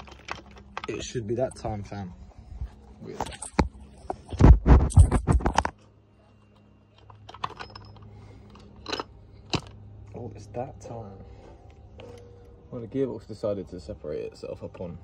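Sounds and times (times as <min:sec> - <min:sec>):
handling clicks and knocks: 0:00.0 - 0:01.2, 0:06.9 - 0:09.8.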